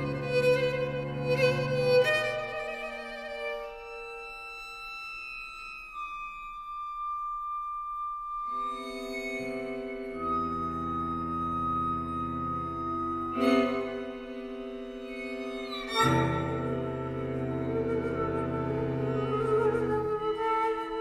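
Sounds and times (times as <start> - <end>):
low cello notes: 0.0 - 4.6, 8.5 - 21.0
flute and strings chamber music: 0.0 - 21.0.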